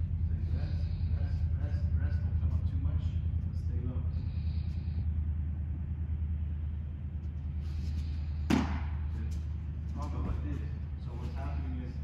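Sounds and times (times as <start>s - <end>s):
steady low hum: 0.0s - 12.0s
baseball hitting leather glove: 8.5s - 9.1s.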